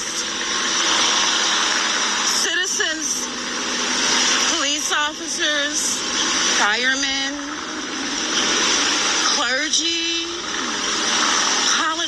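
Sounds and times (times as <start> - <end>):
steady rushing noise: 0.0 - 12.0
woman speaking slowly: 2.3 - 3.3, 4.6 - 6.0, 6.6 - 7.5, 9.3 - 10.4, 11.8 - 12.0.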